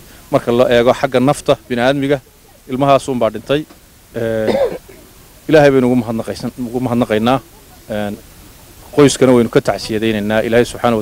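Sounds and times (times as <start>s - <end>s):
man talking: 0.3s - 4.8s, 5.4s - 8.2s, 8.9s - 11.0s.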